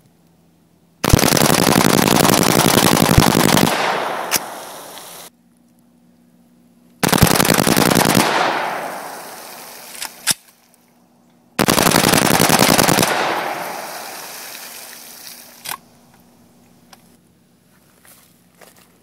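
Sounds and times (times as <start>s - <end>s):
rapid rifle gunshot bursts: 1.0s - 5.3s, 7.0s - 10.2s, 11.6s - 14.5s.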